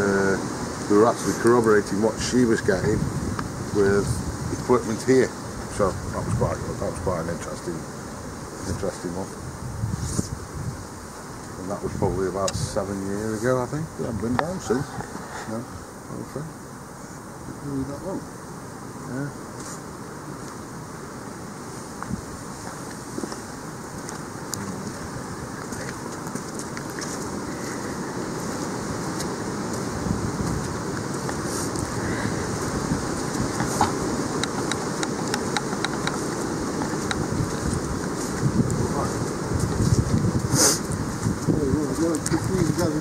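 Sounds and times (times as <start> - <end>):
wind buffeting microphone: 0.0 - 16.0, 20.3 - 43.0
footsteps on a towpath: 22.0 - 43.0
sharp ticks: 33.6 - 37.3.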